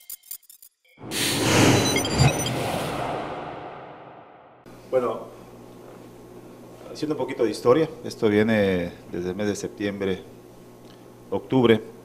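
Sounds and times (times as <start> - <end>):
whoosh sound effect: 1.1 - 4.7.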